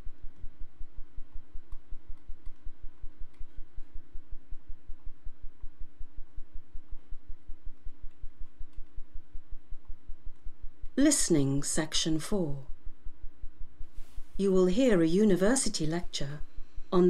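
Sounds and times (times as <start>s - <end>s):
low pulsing hum: 0.0s - 17.0s.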